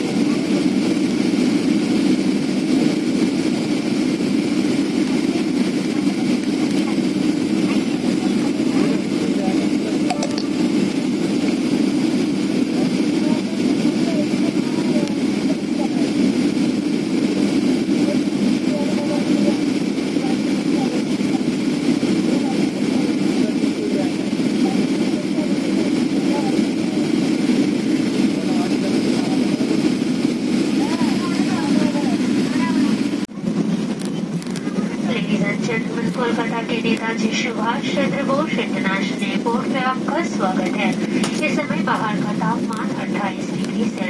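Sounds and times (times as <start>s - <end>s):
airliner engine drone in cabin: 0.0s - 44.0s
faint passenger voices: 0.0s - 44.0s.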